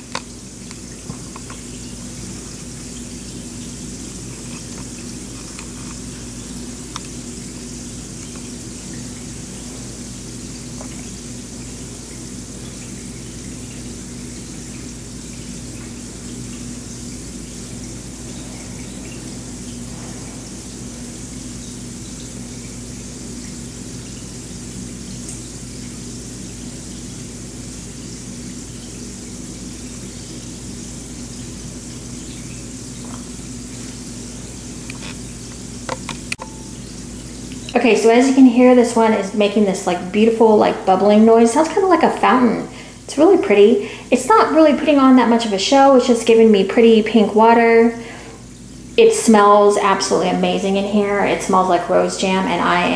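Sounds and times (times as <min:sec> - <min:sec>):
low hum: 0:00.0 - 0:24.0
bath bomb fizzing in bathtub: 0:00.0 - 0:52.9.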